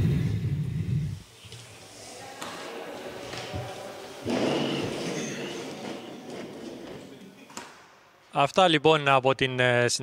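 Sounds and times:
chairs scraping: 1.5s - 7.8s.

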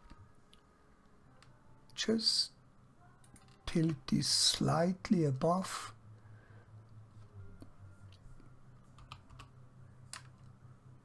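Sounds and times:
steady low hum: 0.0s - 11.0s
keyboard keys clicking: 9.0s - 9.5s.

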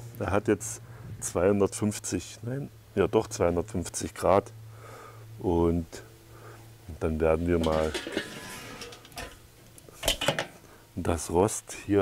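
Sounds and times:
clinks and knocks of hard objects: 7.6s - 9.4s, 10.0s - 10.6s.

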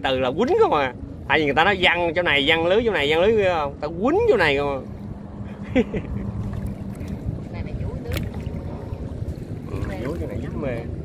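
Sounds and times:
water moving around boat: 0.0s - 11.0s
wind on microphone: 3.5s - 11.0s.

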